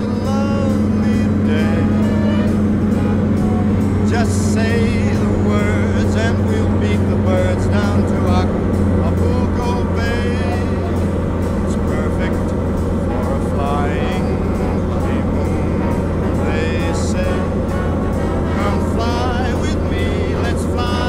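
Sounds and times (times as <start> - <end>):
light aircraft engine droning: 0.0 - 21.0
music: 0.0 - 21.0.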